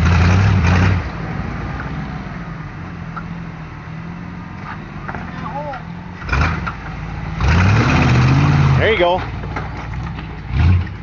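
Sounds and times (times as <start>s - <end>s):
off-road vehicle engine revving: 0.0s - 3.2s, 4.0s - 11.0s.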